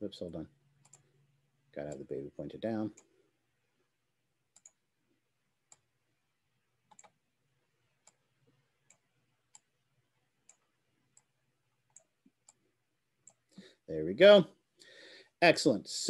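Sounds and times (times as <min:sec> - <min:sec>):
faint computer mouse clicks: 0:00.8 - 0:01.1, 0:04.5 - 0:04.8, 0:06.9 - 0:07.2.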